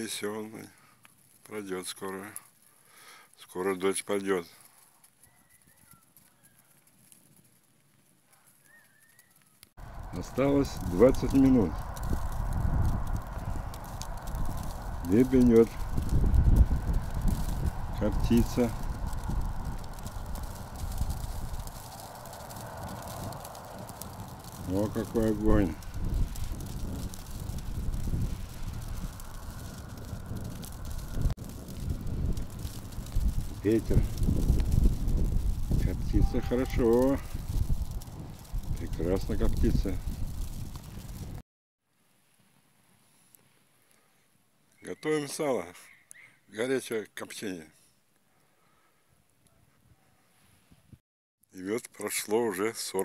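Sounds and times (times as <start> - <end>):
wood fire crackling: 0.0 - 41.4
high bird chirps: 8.6 - 9.6, 45.8 - 46.5
wind buffeting microphone: 9.8 - 41.4.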